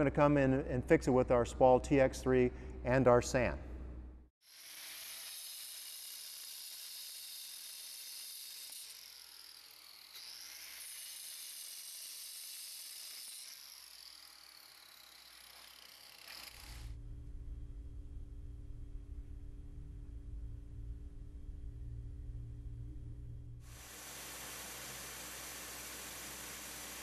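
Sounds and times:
angle grinder cutting concrete: 4.5 - 16.9.

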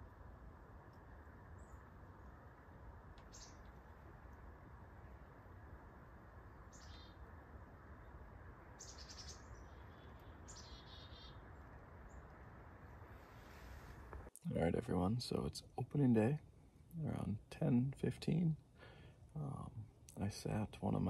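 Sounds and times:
low background hiss: 0.0 - 21.0
high-pitched bird chirps: 6.7 - 7.2, 8.8 - 11.4.

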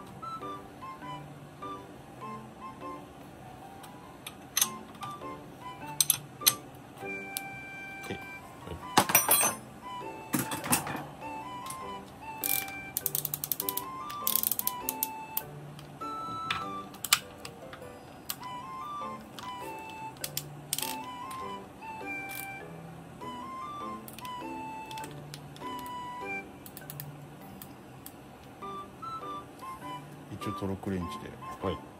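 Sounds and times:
background music: 0.0 - 27.7, 28.5 - 31.9
ratchet wrench clicking: 12.4 - 15.0.

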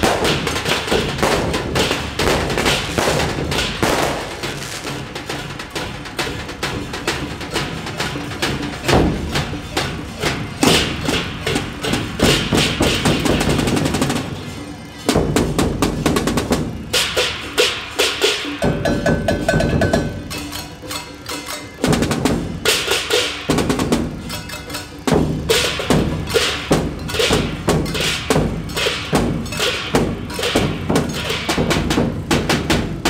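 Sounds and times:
barrel drums beating: 0.0 - 33.0
gongs struck: 0.0 - 33.0
hand cymbals clashing: 0.0 - 33.0.

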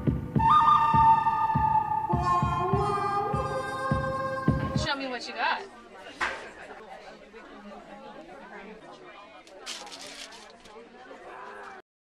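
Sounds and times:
background music with low beat: 0.0 - 4.9.

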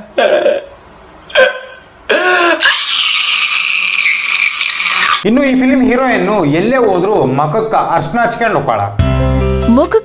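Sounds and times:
man crying in gulping sobs: 0.0 - 3.4.

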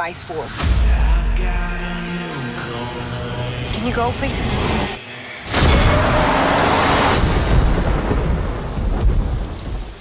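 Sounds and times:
heavy rain: 5.4 - 10.0
thunder rolling: 5.6 - 10.0.

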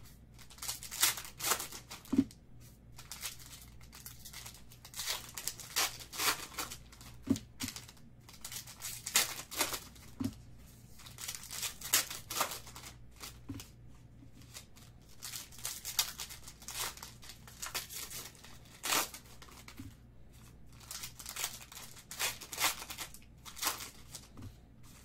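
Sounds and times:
foil wrappers tearing and crinkling: 0.4 - 2.1, 3.0 - 10.1, 11.0 - 13.4, 14.5 - 19.8, 20.7 - 24.3.

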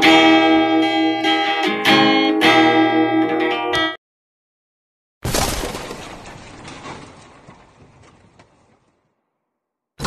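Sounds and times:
shattering crash: 5.2 - 9.1
debris clicks: 5.2 - 9.2.

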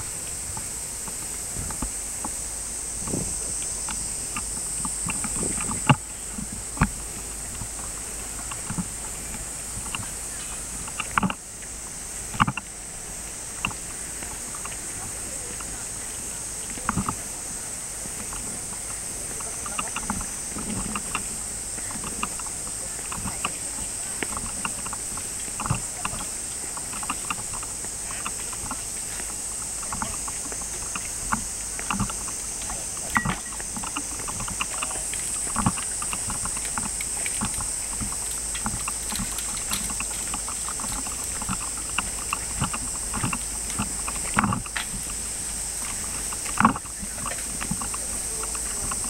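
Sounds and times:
high-pitched hiss: 0.0 - 49.0.

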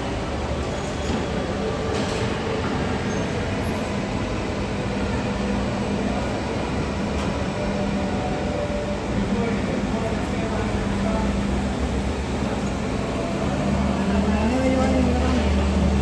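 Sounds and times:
jet engines at taxi power: 0.0 - 16.0.

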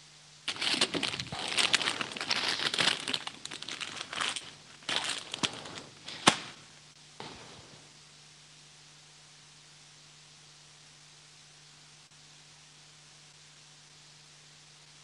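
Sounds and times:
plastic bags crinkling: 0.5 - 6.6.

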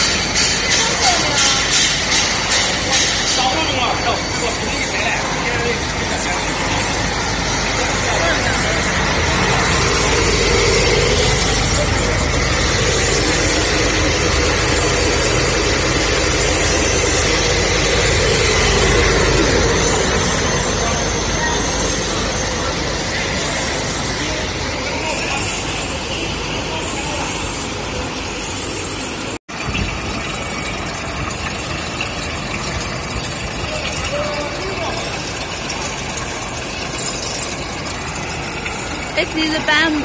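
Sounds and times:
machine running: 0.0 - 40.0
faint high whine: 3.5 - 40.0.

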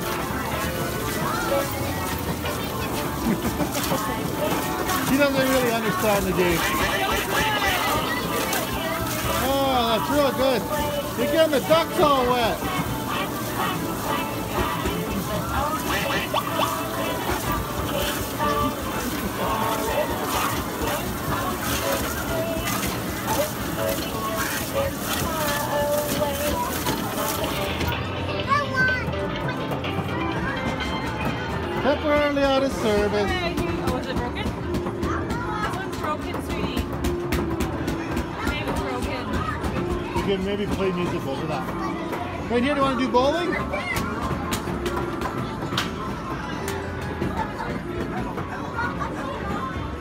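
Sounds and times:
electronic game machine music: 0.0 - 33.4
people chattering: 0.0 - 50.0.

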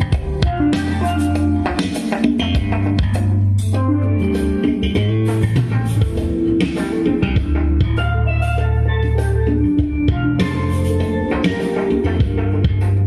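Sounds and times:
loud music through a speaker: 0.0 - 13.0.

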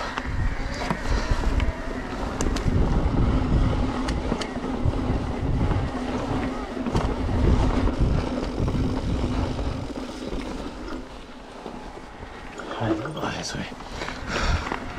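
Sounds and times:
stones and bike rattling: 0.0 - 14.9
tyres rolling over gravel: 0.0 - 14.9
wind buffeting microphone: 0.0 - 14.9.

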